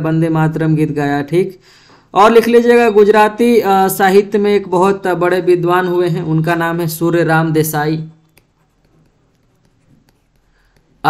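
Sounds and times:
stylus scratching and tapping: 6.5 - 11.0.

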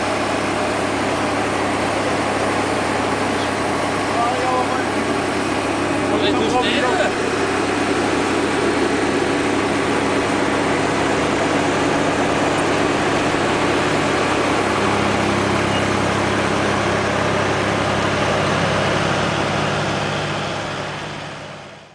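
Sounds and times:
tractor engine running: 0.0 - 21.9.

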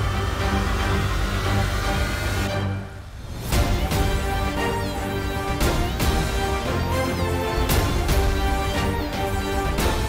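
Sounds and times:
dramatic background score: 0.0 - 10.0.

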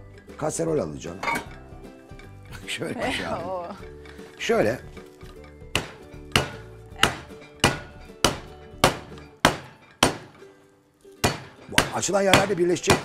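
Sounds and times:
saucepan pounding meat on board: 5.7 - 10.4, 11.2 - 13.0.

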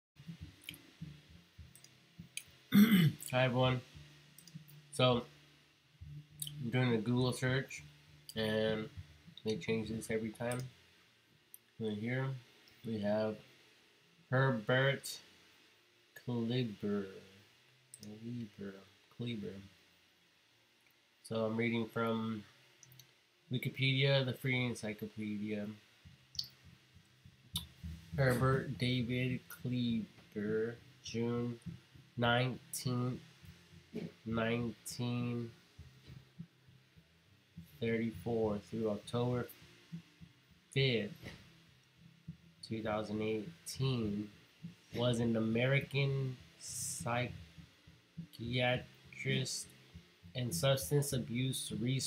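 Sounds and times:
soft low thuds: 25.7 - 51.8.

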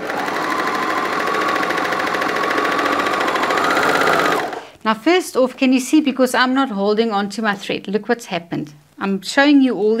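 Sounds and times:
overlocker sewing machine running: 0.0 - 4.7.

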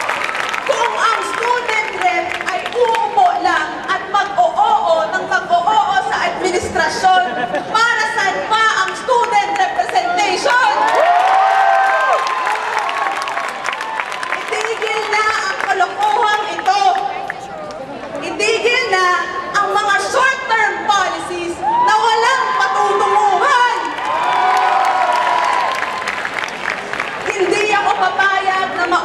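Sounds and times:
people clapping: 0.0 - 3.3, 9.2 - 17.8, 23.8 - 27.8
crowd cheering and whooping: 10.6 - 14.6, 21.6 - 26.5.

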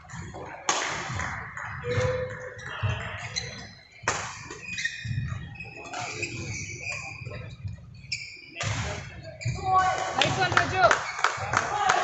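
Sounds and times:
voices in a hall: 0.0 - 12.0
shoe squeaks on court: 1.8 - 11.2.

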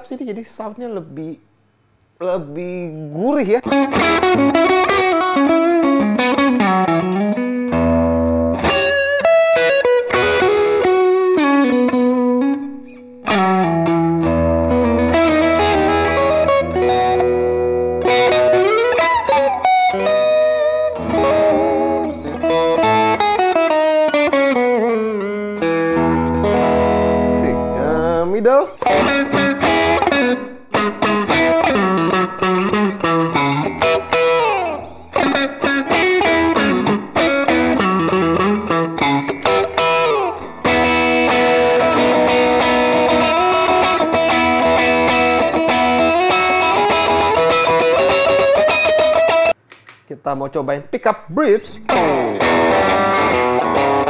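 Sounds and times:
overdriven electric guitar: 3.6 - 50.0, 51.8 - 54.0.

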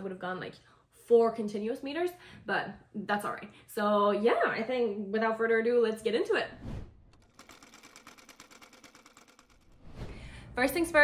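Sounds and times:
sewing machine stitching: 7.1 - 10.0.

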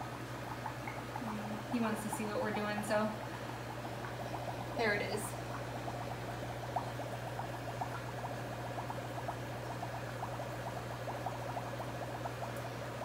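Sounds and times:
air bubbling in water: 0.0 - 13.0
air pump humming: 0.0 - 13.0.

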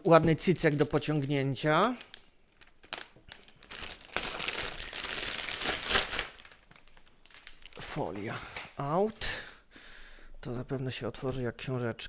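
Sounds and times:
plastic film wrap crinkling: 0.0 - 8.0.

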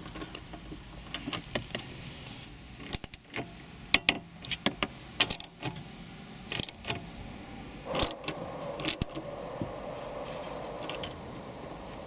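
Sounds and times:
ratchet clicking: 2.8 - 3.4, 4.0 - 5.7, 6.5 - 7.0, 8.0 - 8.2.

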